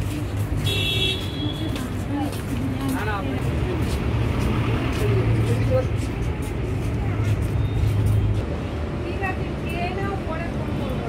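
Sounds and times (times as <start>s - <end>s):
indistinct crowd chatter: 0.0s - 11.0s
road traffic rumble: 0.0s - 11.0s.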